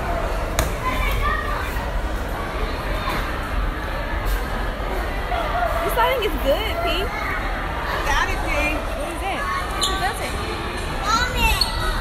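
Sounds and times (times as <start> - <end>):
children's voices and chatter: 0.0 - 12.0.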